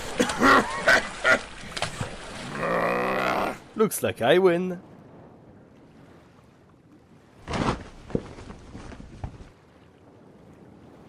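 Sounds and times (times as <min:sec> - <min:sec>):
water lapping around boat: 0:00.0 - 0:03.9, 0:04.8 - 0:11.0.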